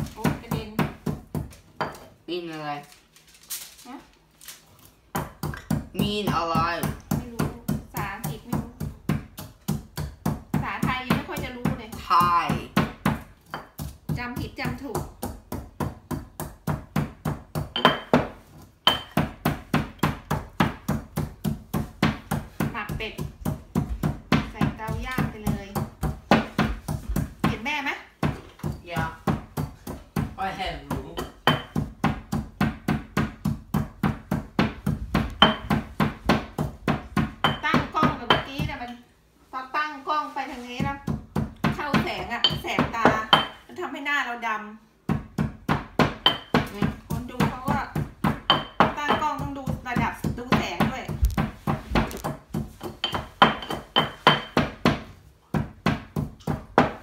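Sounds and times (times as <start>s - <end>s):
woman talking: 0.0s - 0.9s, 2.3s - 3.0s, 6.0s - 8.8s, 10.6s - 12.8s, 14.1s - 15.1s, 24.5s - 25.8s, 27.5s - 28.1s, 37.6s - 41.1s, 41.8s - 44.8s, 46.7s - 48.0s, 48.9s - 51.2s
stone mortar and pestle pounding: 0.0s - 2.1s, 5.1s - 39.0s, 40.7s - 43.7s, 45.0s - 57.0s.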